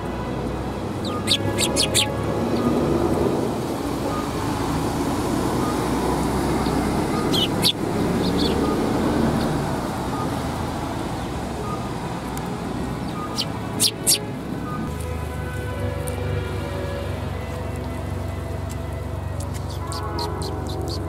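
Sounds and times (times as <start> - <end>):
road traffic rumble: 0.0 - 21.0
sparrows chirping: 0.9 - 3.2, 5.5 - 11.9, 12.9 - 14.9, 19.4 - 21.0.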